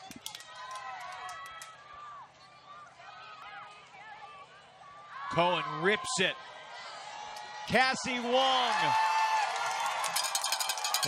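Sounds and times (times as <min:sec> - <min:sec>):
sharp claps: 0:00.0 - 0:01.8.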